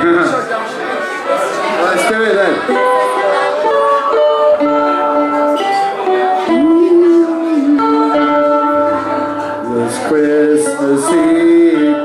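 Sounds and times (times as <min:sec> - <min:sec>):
keyboard held melody notes: 0:02.0 - 0:12.0
strummed acoustic guitar: 0:02.6 - 0:12.0.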